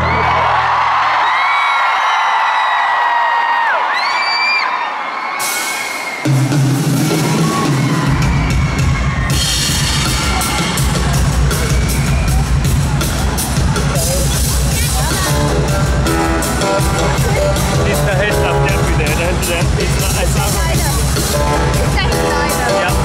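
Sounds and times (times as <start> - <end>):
crowd screaming and whooping: 0.0 - 23.0
drums: 5.2 - 23.0
loud bass line: 9.4 - 23.0.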